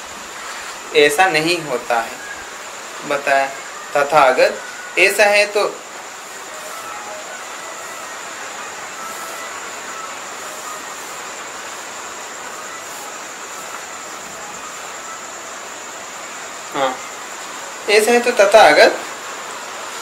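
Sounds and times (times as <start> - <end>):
faint high whine: 0.0 - 20.0
room noise hiss: 0.0 - 20.0.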